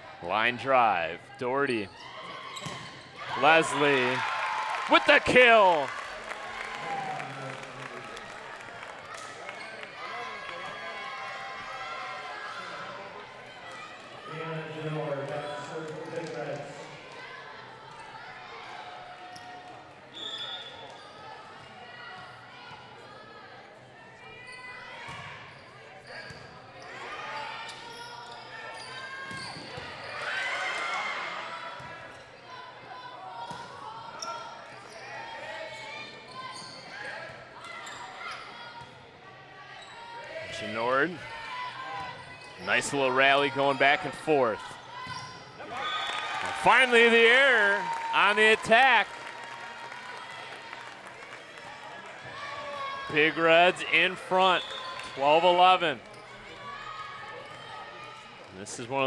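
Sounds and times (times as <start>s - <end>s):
spectators' voices echoing: 3.2s - 11.6s, 45.6s - 57.4s
players calling: 3.3s - 8.2s, 45.6s - 49.5s, 53.1s - 56.1s.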